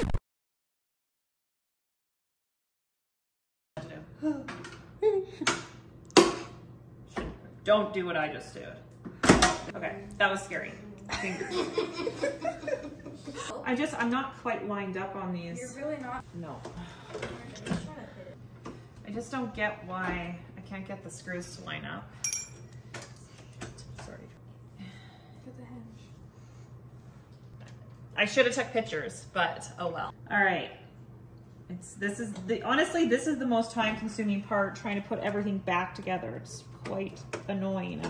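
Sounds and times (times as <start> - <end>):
woman murmuring: 4.1 - 5.4.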